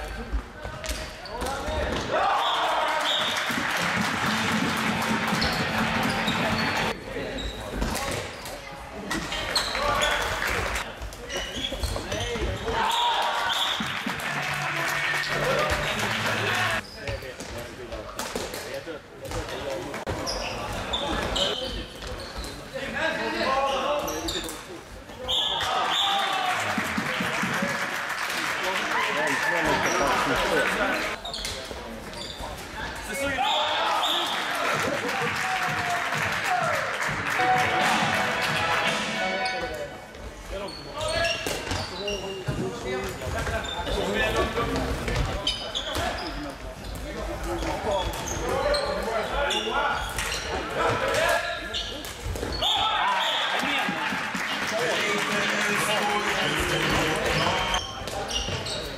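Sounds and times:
players shouting in a hall: 2.0 - 3.6, 33.2 - 39.6, 52.6 - 54.3.

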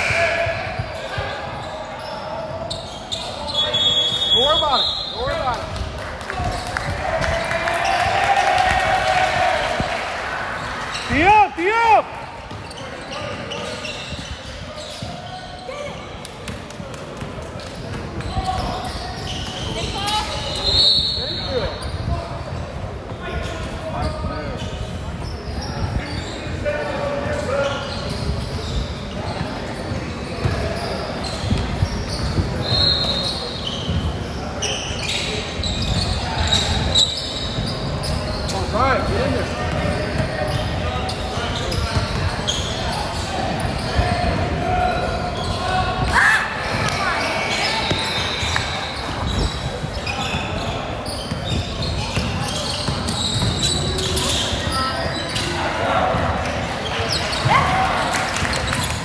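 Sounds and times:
sneakers squeaking: 0.0 - 59.0
basketball bouncing: 51.3 - 53.9.

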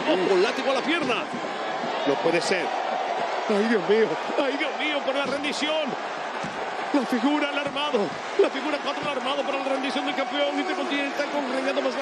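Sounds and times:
man giving sports commentary: 0.0 - 12.0.

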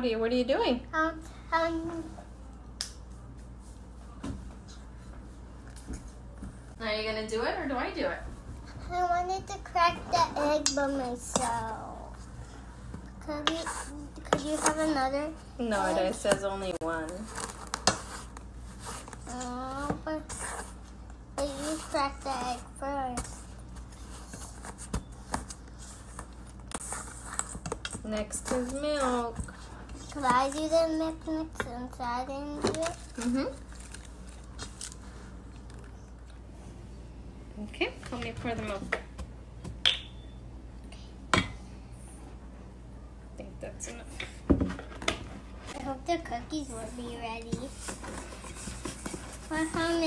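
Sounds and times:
low room hum: 0.0 - 50.0
child's voice: 1.0 - 2.2, 8.8 - 12.2, 13.2 - 15.5, 19.3 - 20.4, 21.4 - 23.3, 30.0 - 33.5, 45.8 - 47.8.

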